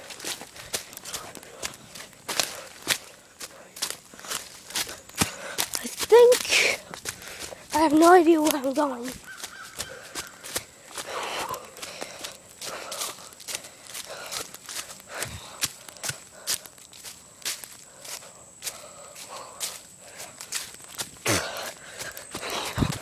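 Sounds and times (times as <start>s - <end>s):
footsteps crunching through leaves: 0.0s - 23.0s.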